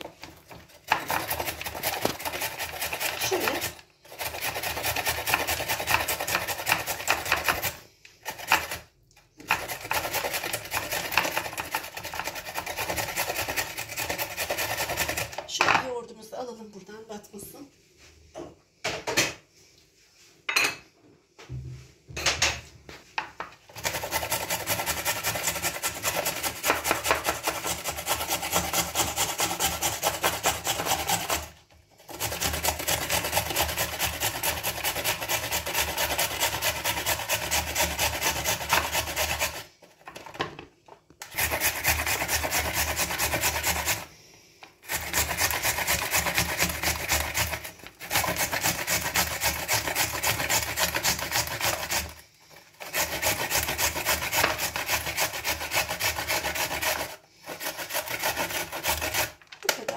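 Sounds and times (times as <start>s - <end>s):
carrot scraping on metal grater: 0.0s - 15.5s, 23.7s - 40.3s, 41.2s - 44.1s, 44.8s - 59.4s.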